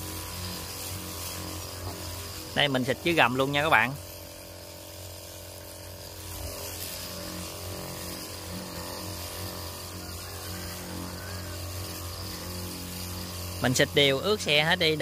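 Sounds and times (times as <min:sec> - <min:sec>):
pump hum: 0:00.0 - 0:15.0
spray hissing: 0:00.0 - 0:15.0.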